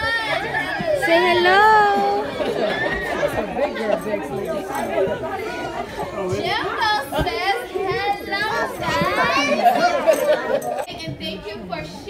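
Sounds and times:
chatter of adults and children: 0.0s - 12.0s.

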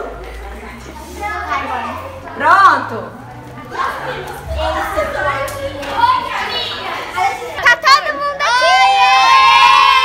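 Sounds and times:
girls shouting excitedly: 4.6s - 10.0s.

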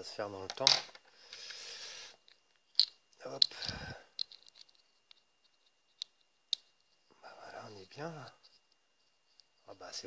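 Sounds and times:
plastic parts clicking: 2.3s - 5.2s.

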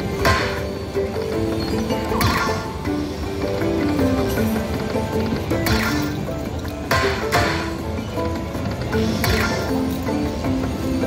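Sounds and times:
slot machine electronic music: 0.0s - 11.0s.

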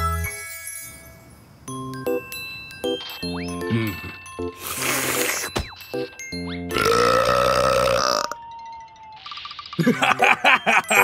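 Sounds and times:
cartoon character burping: 3.6s - 5.5s, 6.7s - 8.4s
cartoon character laughing: 9.8s - 11.0s.

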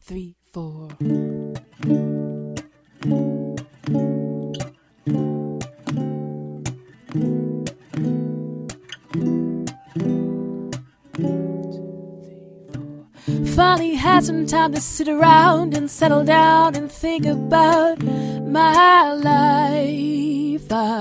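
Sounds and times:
acoustic guitar strumming: 1.0s - 21.0s.

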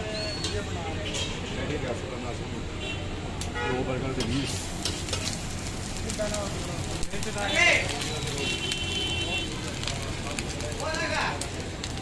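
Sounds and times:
street noise: 0.0s - 12.0s
meat sizzling on a griddle: 3.9s - 12.0s
metal utensils clicking on griddle: 4.2s - 12.0s.

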